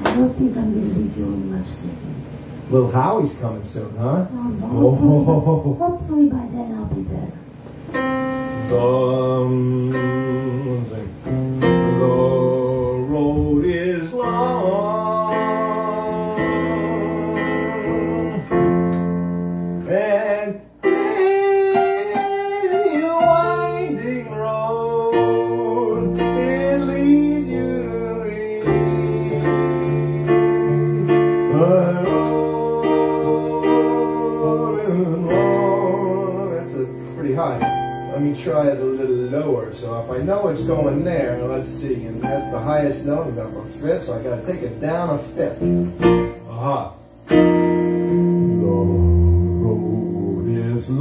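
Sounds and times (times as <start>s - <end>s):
electronic keyboard playing song: 7.9s - 13.1s, 14.2s - 19.9s, 20.8s - 39.4s, 40.2s - 51.0s.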